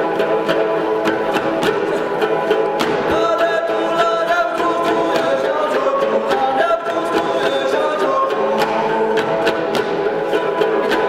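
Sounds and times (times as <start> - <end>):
lutes strummed: 0.0 - 11.0
sharp rhythmic strikes: 0.0 - 11.0
person singing: 1.7 - 11.0.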